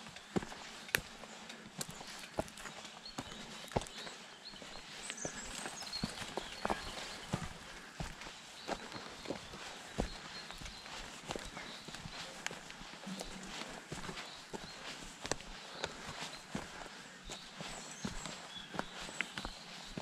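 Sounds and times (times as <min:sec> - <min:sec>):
bike tyres crunching on stony trail: 0:00.1 - 0:20.0.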